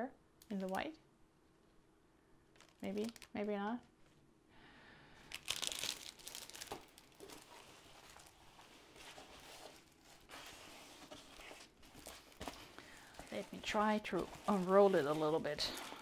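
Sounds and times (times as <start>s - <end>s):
plastic film crinkling: 2.5s - 3.5s, 5.2s - 16.0s.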